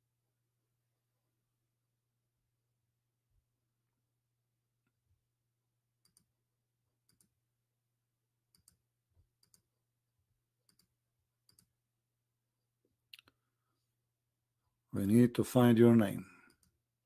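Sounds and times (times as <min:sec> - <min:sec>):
computer mouse clicks: 0:06.0 - 0:06.3, 0:07.0 - 0:07.4, 0:08.5 - 0:08.8, 0:09.4 - 0:09.7, 0:10.6 - 0:11.8, 0:16.5 - 0:16.8.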